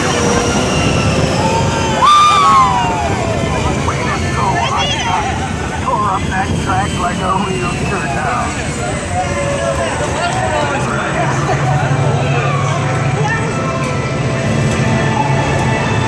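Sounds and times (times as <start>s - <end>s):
wind rushing: 0.0s - 10.1s
track rumble: 0.0s - 16.0s
riders whooping and cheering: 1.2s - 5.4s, 8.0s - 13.2s
people shouting: 1.4s - 3.4s.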